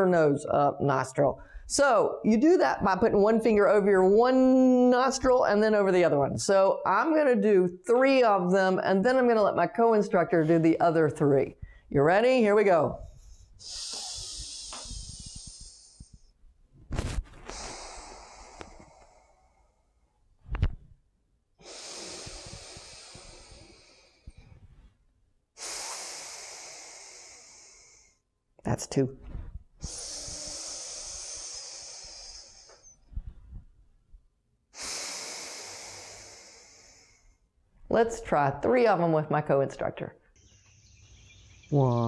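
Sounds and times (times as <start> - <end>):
woman breathing through nostril: 11.6 - 11.9, 13.0 - 16.3, 17.0 - 20.6, 21.6 - 25.0, 25.6 - 28.2, 29.3 - 33.6, 34.7 - 37.5.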